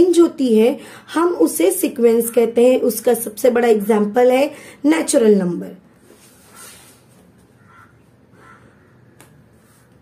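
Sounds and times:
faint bird calls: 7.6s - 10.0s.

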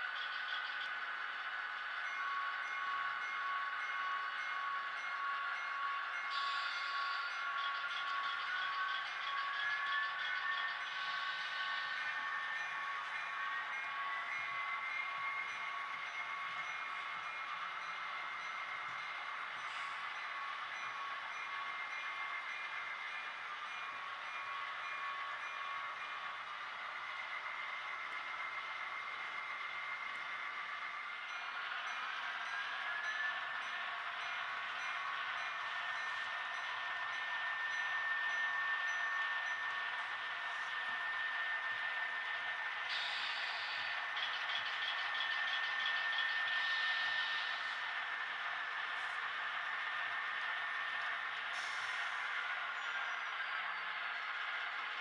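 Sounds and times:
model locomotive motor whine: 0.0s - 55.0s.

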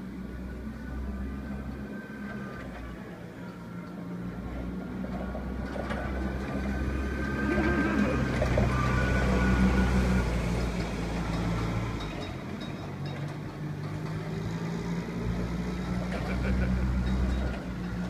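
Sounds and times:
forklift engine running: 0.0s - 18.0s.

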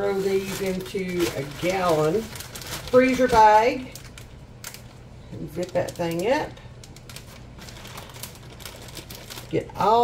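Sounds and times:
plastic bag seal clicking and crinkling: 0.4s - 5.0s, 5.6s - 10.0s.

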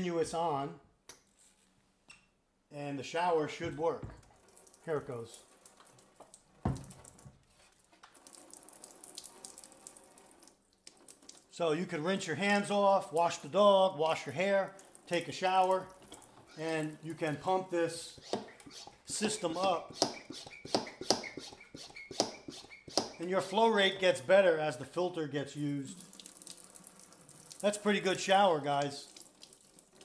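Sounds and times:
hand pump strokes: 18.0s - 23.8s
water spraying into a metal sink: 18.0s - 23.8s.

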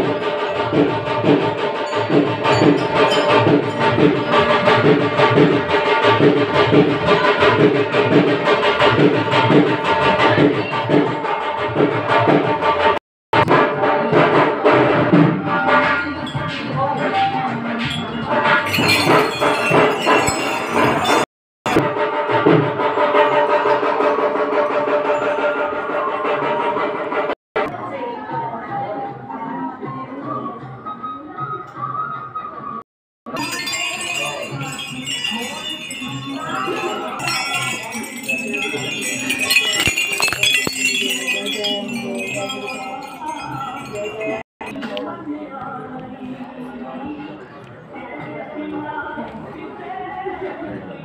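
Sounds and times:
music: 0.0s - 51.0s
small brass bells jangling: 1.3s - 4.8s, 17.8s - 21.3s, 33.3s - 44.5s
voices: 33.3s - 51.0s.

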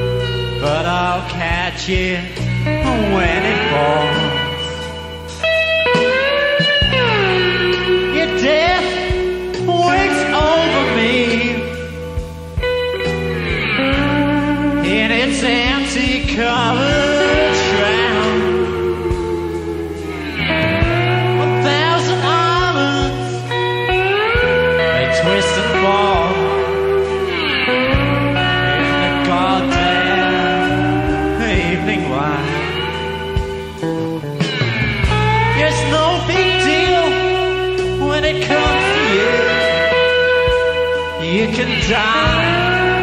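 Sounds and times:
electric guitar sliding notes: 0.0s - 43.0s.

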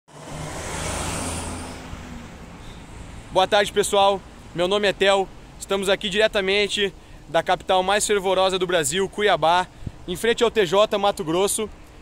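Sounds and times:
car passing by: 0.1s - 4.6s.

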